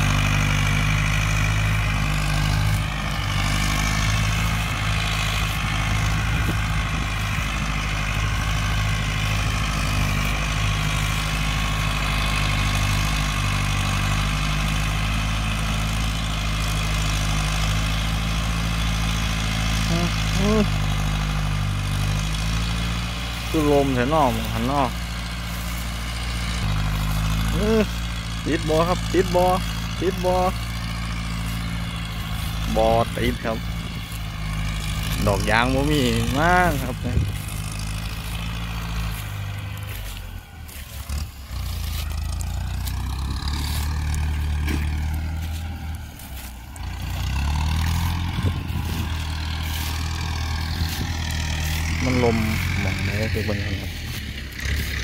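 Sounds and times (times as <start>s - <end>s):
tractor diesel engine running: 0.0s - 55.0s
man's voice: 19.9s - 20.7s, 23.5s - 25.0s, 27.5s - 30.6s, 32.6s - 33.7s, 35.1s - 37.4s, 52.0s - 54.2s.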